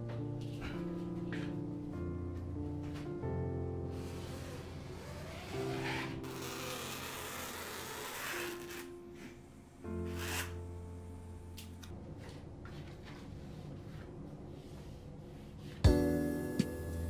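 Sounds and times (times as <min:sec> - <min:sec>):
soft music with held chords: 0:00.0 - 0:13.2, 0:15.3 - 0:17.0.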